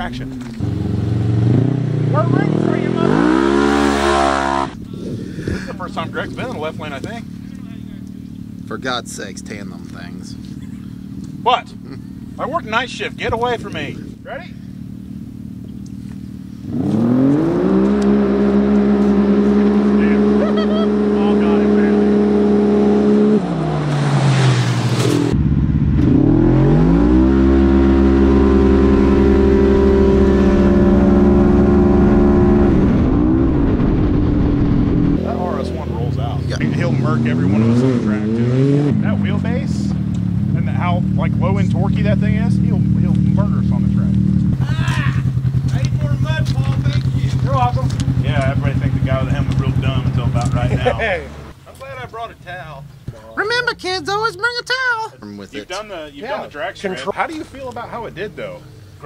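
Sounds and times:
engines revving at full throttle: 0.0s - 51.6s.

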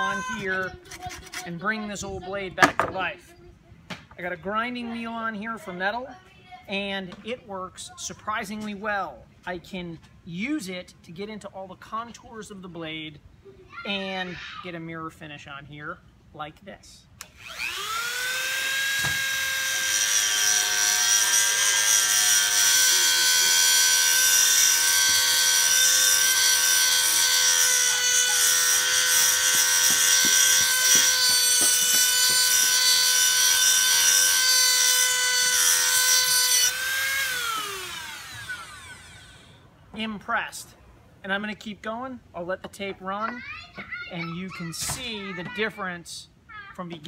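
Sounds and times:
rotary tool whining: 17.2s - 39.6s
grinding wheel hissing on blade: 17.4s - 39.6s.

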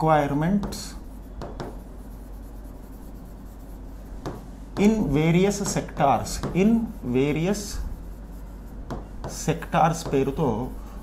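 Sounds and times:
stylus scratching on glass: 0.0s - 10.8s
low steady hum: 0.0s - 11.0s.

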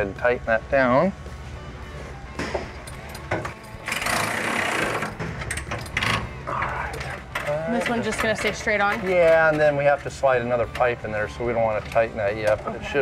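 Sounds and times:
power tool running: 3.8s - 5.3s
metal knocks: 5.0s - 6.4s.

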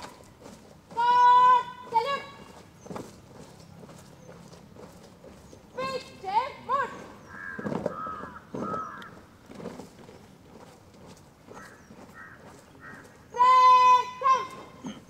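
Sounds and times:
shouted drill commands: 0.9s - 2.6s, 13.3s - 14.8s.

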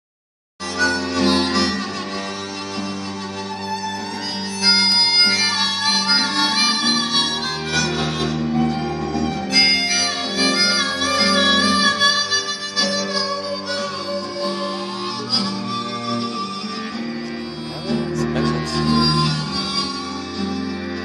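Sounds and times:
acoustic guitar: 0.6s - 21.0s
harmonica melody: 0.6s - 21.0s
bowed strings: 0.7s - 21.0s.

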